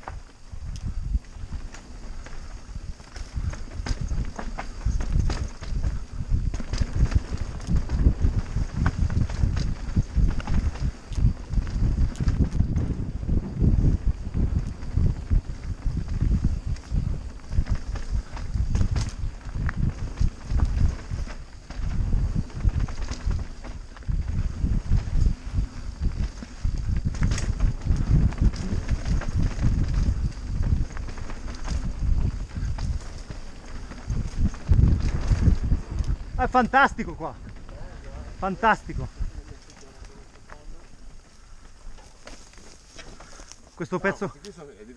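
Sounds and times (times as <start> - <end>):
bike rattling over bumps: 0.0 - 44.2
bike tyres rumbling over dirt: 0.0 - 44.2
wind buffeting microphone: 0.0 - 44.4.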